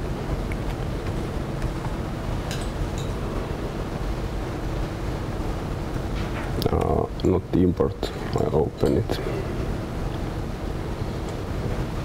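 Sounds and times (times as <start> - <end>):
room hiss and hum: 0.0 - 12.0.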